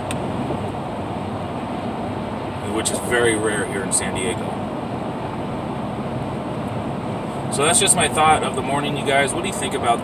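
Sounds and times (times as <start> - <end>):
road and engine noise in truck: 0.0 - 10.0.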